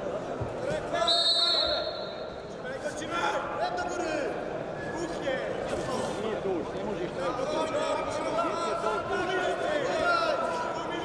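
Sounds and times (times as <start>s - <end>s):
referee's whistle: 1.0s - 2.4s.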